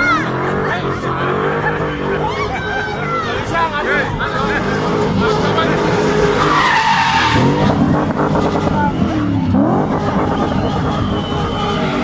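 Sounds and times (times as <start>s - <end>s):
car engine revving: 0.0s - 12.0s
tyres squealing: 0.0s - 12.0s.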